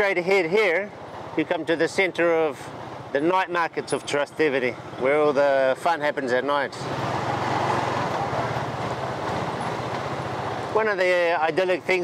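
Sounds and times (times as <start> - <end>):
rush of wind and road: 0.0 - 12.0
scooter engine hum: 6.8 - 10.8.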